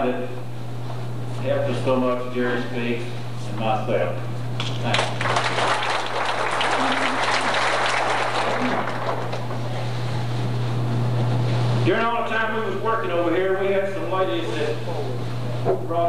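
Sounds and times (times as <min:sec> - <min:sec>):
steady low hum: 0:00.0 - 0:16.0
audience applauding: 0:04.8 - 0:09.9.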